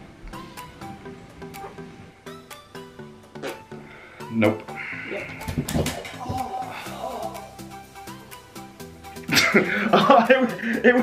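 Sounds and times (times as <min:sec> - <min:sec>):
background music: 0:00.0 - 0:11.0
body thudding on floor: 0:05.4 - 0:06.4
man crying out: 0:06.1 - 0:07.6.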